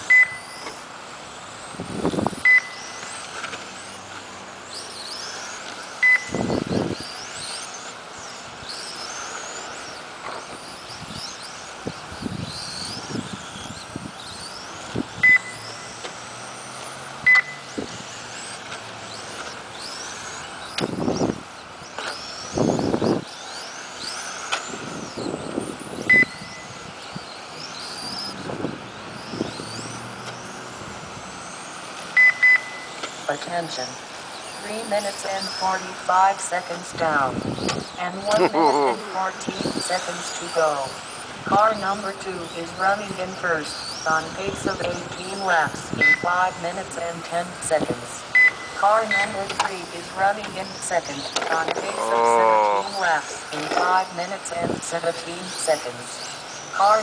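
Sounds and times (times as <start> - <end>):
rc car motors whining: 0.0 - 57.0
sharp single beeps: 0.1 - 0.5, 2.4 - 2.9, 6.0 - 6.5, 15.2 - 15.9, 17.2 - 17.7, 26.1 - 26.7, 32.2 - 33.0, 46.0 - 46.4, 48.3 - 49.4.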